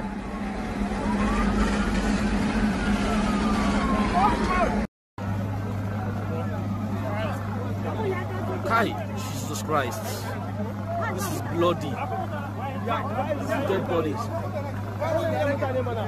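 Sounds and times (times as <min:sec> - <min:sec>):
faint long wail: 0:00.2 - 0:04.8
faint voices: 0:03.7 - 0:16.0.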